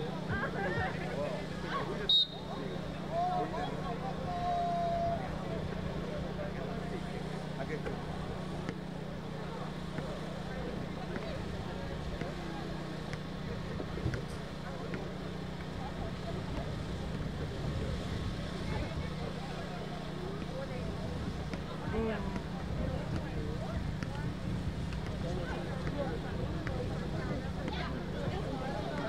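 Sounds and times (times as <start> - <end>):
faint voices calling out: 0.0 - 29.0
steady low hum: 0.0 - 29.0.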